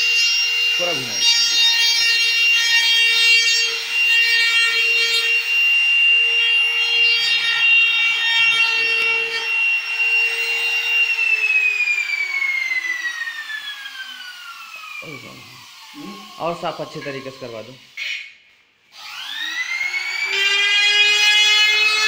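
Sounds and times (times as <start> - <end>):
power tool whine: 0.0 - 22.0
wood rubbing and cutting: 0.0 - 22.0.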